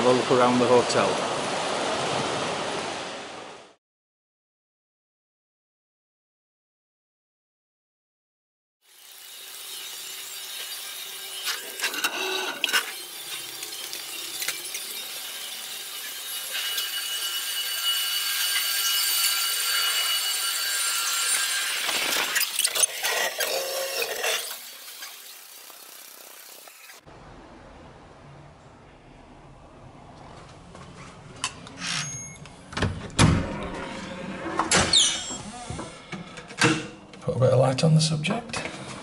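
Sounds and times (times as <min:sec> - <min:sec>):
steady high tones: 0:08.9 - 0:27.1
fast-forwarded walking noise: 0:30.1 - 0:31.7.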